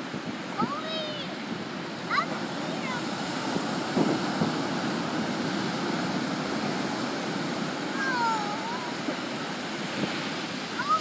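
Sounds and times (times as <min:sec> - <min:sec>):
ocean surf breaking: 0:00.0 - 0:11.0.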